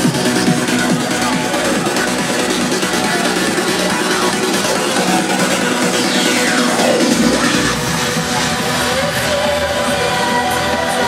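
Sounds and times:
electronic trance music: 0.0s - 10.0s
falling sweep: 4.6s - 9.0s.

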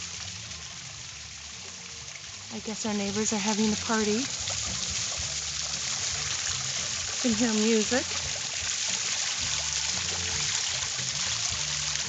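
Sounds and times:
faint music with bass line: 0.0s - 12.0s
water splashing into pond: 0.0s - 12.0s.

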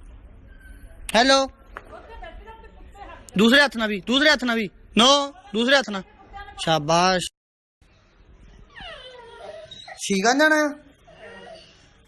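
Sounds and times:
dog whining: 8.6s - 10.2s, 10.9s - 12.0s.

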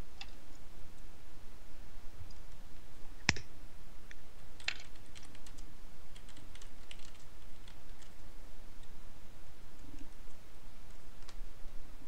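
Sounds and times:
typing on computer keyboard: 4.6s - 8.2s.

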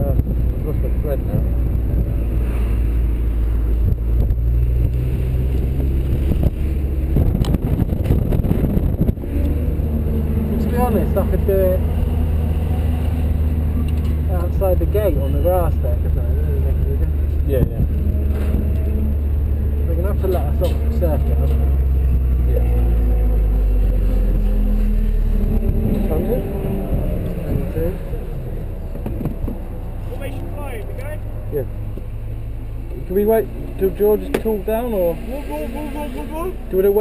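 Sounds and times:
car engine running at low revs: 0.0s - 37.0s
rush of noise: 0.0s - 37.0s.

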